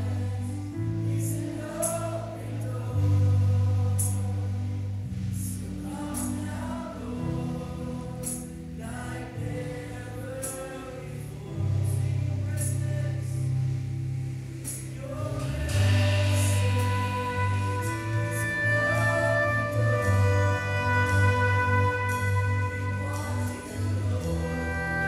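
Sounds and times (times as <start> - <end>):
worship band singing: 0.0 - 13.9, 14.6 - 25.0
drum kit: 14.5 - 25.0
cymbal crashes: 15.7 - 24.6.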